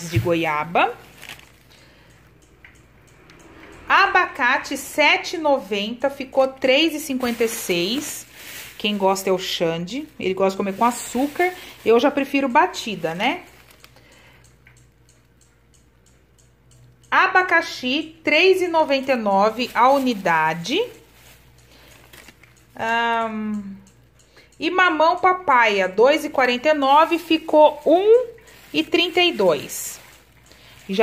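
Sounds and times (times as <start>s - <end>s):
plastic bags rustling: 0.0s - 2.3s, 5.7s - 14.2s, 18.5s - 23.0s, 26.2s - 31.0s.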